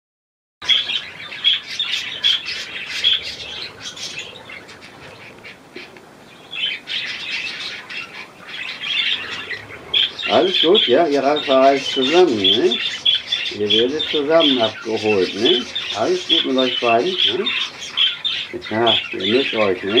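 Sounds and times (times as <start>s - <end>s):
budgerigars chirping: 0.6s - 20.0s.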